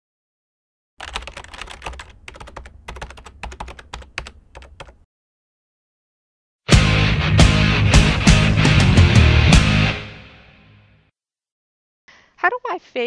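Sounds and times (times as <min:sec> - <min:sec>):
computer keyboard typing: 0:01.0 - 0:05.0.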